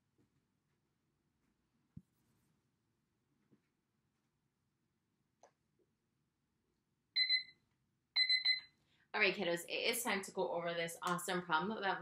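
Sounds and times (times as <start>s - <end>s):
timer high-pitched beeps: 7.2s - 7.5s, 8.2s - 8.7s.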